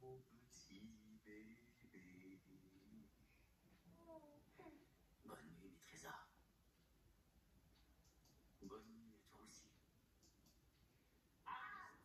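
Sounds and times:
soft voice from television: 0:00.0 - 0:06.7, 0:07.9 - 0:10.7, 0:11.4 - 0:12.0.

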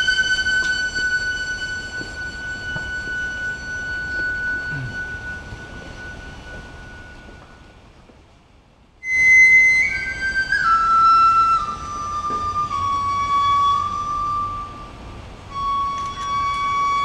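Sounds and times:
bamboo flute playing: 0:00.0 - 0:07.9, 0:09.0 - 0:17.0.

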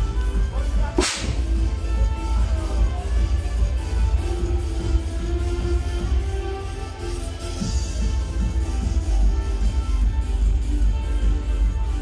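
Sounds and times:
loud music with heavy bass: 0:00.0 - 0:12.0
confetti cannon pop and whoosh: 0:01.0 - 0:01.4.

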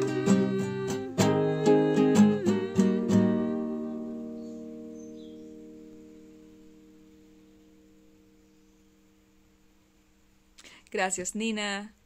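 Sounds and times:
acoustic guitar chord ringing: 0:00.0 - 0:10.2.

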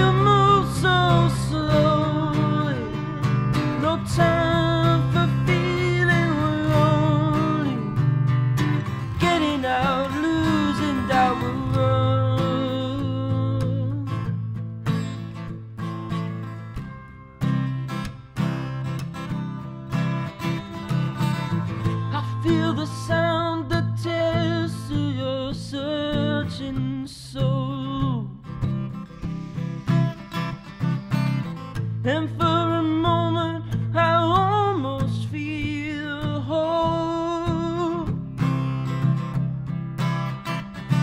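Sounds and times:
young man singing: 0:00.0 - 0:08.2, 0:08.8 - 0:14.3, 0:21.7 - 0:29.0, 0:31.8 - 0:39.0
acoustic guitar strumming: 0:00.0 - 0:41.0.

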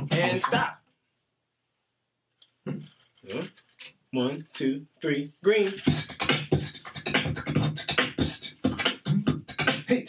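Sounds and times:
man beatboxing: 0:00.0 - 0:00.8, 0:05.6 - 0:10.0.

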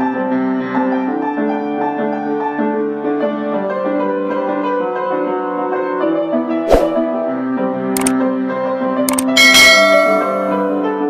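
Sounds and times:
background piano music: 0:00.0 - 0:11.0
bright bell chime: 0:09.4 - 0:10.8.

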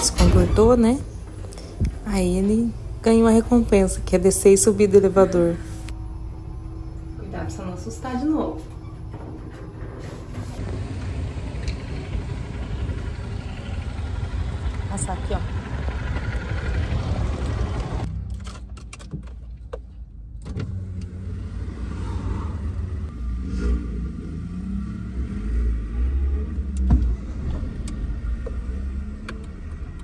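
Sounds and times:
car engine starting and running: 0:00.0 - 0:30.0
outdoor street noise: 0:00.0 - 0:30.0.

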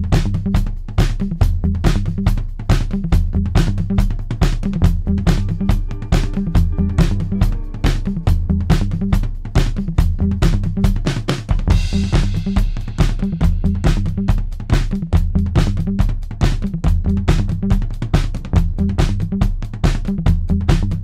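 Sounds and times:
bass line: 0:00.0 - 0:21.0
drum kit beat: 0:00.0 - 0:21.0.

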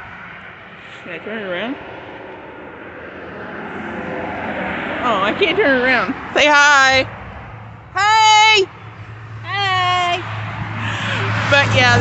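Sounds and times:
road and engine noise inside car: 0:00.0 - 0:12.0.

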